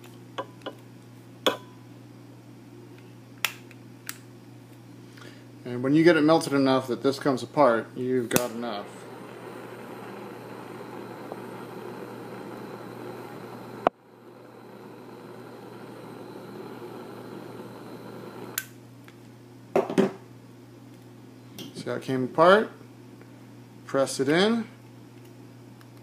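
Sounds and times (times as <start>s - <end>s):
jet torch hissing: 8.2s - 18.6s
torch sharp click: 8.3s - 14.0s, 14.9s - 18.8s.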